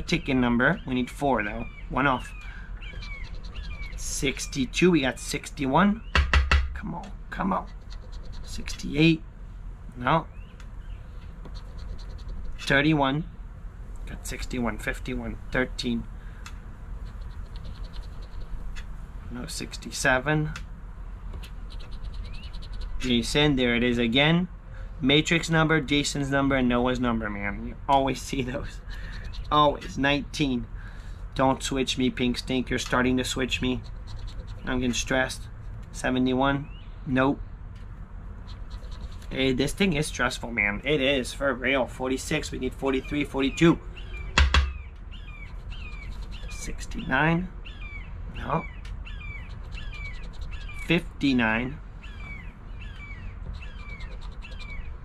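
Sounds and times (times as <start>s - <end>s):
birds chirping: 0.0s - 55.0s
coin scratching lottery ticket: 3.0s - 4.2s, 7.6s - 8.9s, 11.4s - 12.7s, 17.0s - 18.7s, 21.7s - 23.3s, 33.4s - 35.0s, 38.5s - 39.5s, 45.4s - 46.7s, 49.4s - 51.0s, 53.4s - 54.8s.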